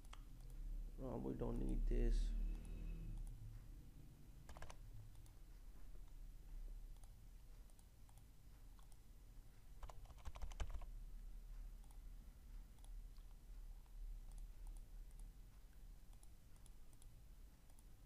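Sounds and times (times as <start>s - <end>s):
low steady hum: 0.0s - 18.0s.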